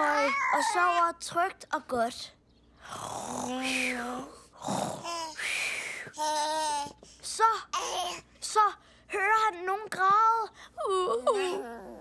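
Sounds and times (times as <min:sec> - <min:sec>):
breathy hums and sighs: 0:02.7 - 0:07.3.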